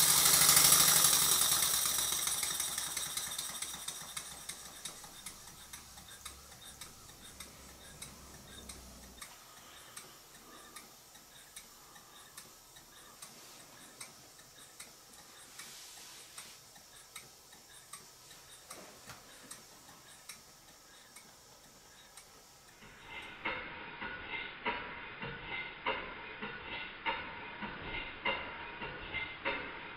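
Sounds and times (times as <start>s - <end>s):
light air hiss: 0.0s - 28.0s
model steam engine ticking: 0.0s - 29.9s.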